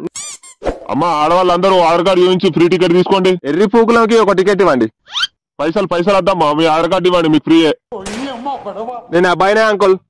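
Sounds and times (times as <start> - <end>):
man speaking: 0.9 - 4.9, 5.6 - 10.0.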